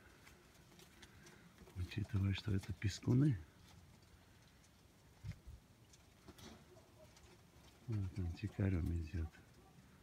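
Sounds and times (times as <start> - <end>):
pigeons calling: 0.0 - 10.0.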